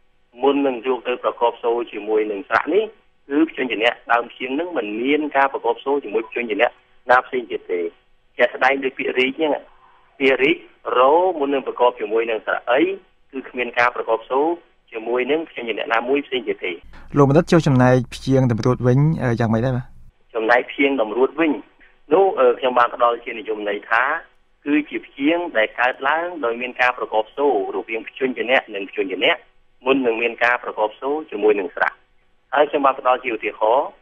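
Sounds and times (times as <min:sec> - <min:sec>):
person lecturing: 0:00.5 - 0:32.0
person talking: 0:16.9 - 0:20.1.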